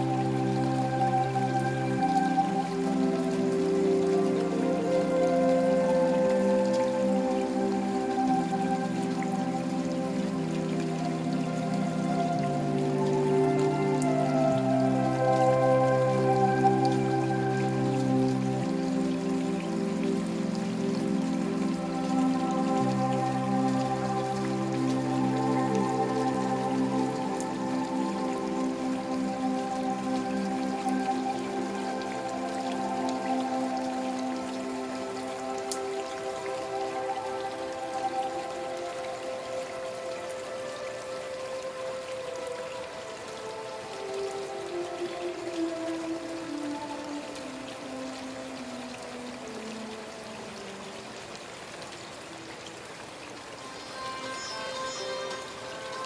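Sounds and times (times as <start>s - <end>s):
slow relaxation music: 0.0s - 56.0s
steady rainfall: 0.0s - 56.0s.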